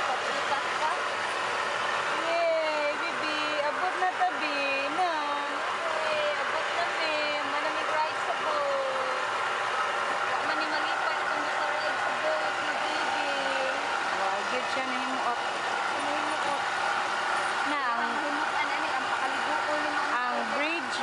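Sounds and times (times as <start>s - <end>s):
people talking: 0.0s - 1.2s, 2.1s - 9.3s, 10.4s - 16.7s, 17.6s - 21.0s
boat engine hum: 0.0s - 21.0s.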